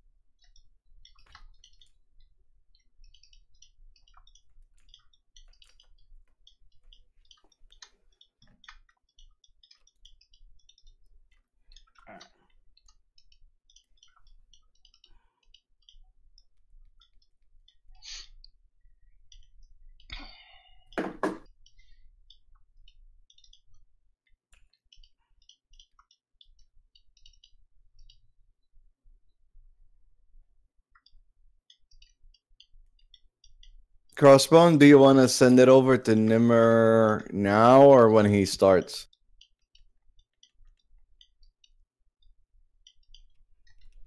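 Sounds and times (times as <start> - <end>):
computer mouse and keys clicking: 0.3 - 29.7, 30.9 - 44.0
knocks on desk: 21.0 - 21.4.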